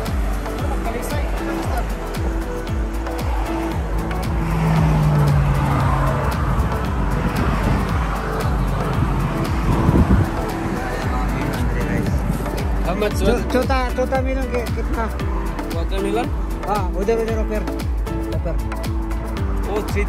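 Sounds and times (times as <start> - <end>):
music: 0.0 - 20.0
road traffic: 0.0 - 20.0.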